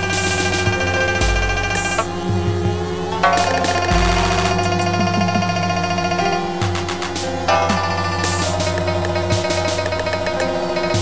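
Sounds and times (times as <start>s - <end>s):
steady bass: 0.0s - 5.9s
synthesizer drone: 0.0s - 11.0s
deep bass hit: 3.4s - 5.8s.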